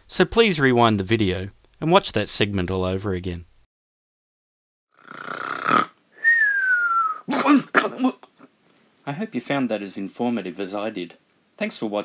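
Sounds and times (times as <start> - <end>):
falling whistled tone: 6.2 - 7.3
man clearing his throat: 7.2 - 8.5.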